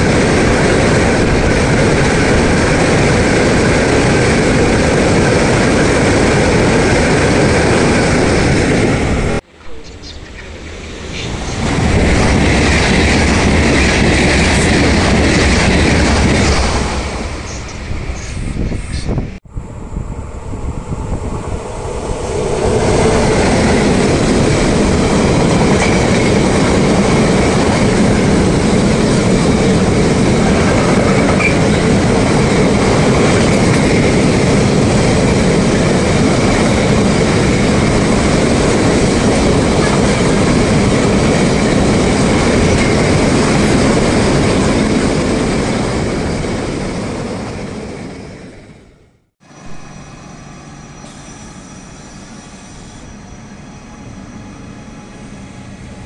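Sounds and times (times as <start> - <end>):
freight train wheels rattling on rails: 0.0 - 9.5, 10.3 - 19.4, 20.5 - 48.7
train passing at speed: 0.0 - 56.0.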